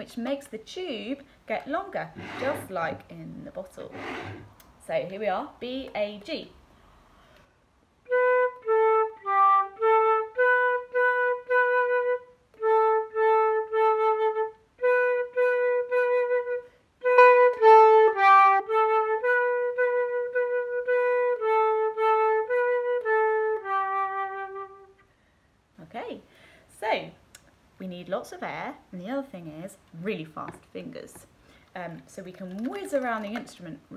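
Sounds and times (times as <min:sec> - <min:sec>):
flute playing simple tune: 0:08.1 - 0:25.0.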